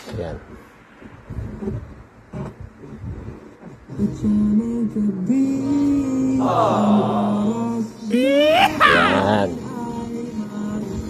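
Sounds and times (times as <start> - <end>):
music with singing from radio: 3.4 - 6.6, 9.5 - 11.0.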